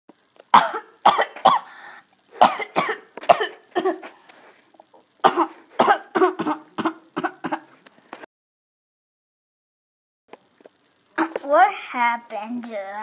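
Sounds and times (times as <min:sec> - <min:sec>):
person coughing: 0:02.4 - 0:04.2, 0:05.2 - 0:07.7.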